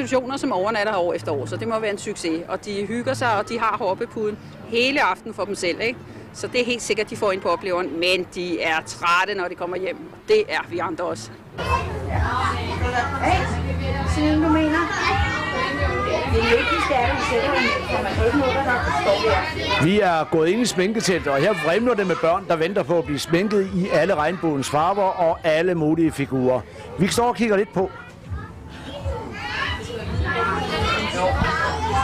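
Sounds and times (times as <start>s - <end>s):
children's voices chattering: 0.0s - 32.0s.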